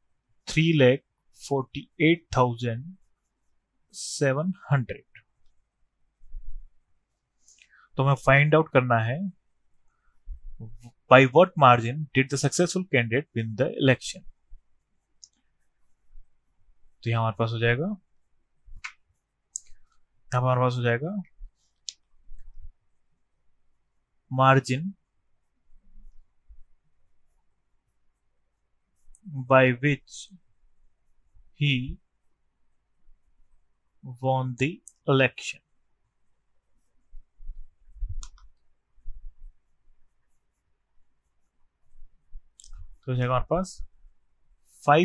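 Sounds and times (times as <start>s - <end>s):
man's voice: 4.0s - 5.2s, 8.0s - 9.3s, 10.6s - 14.2s, 17.1s - 18.0s, 29.3s - 30.3s, 31.6s - 32.0s, 43.1s - 43.8s
faint sharp clicks: 15.2s - 15.5s, 18.8s - 20.0s, 38.2s - 38.6s.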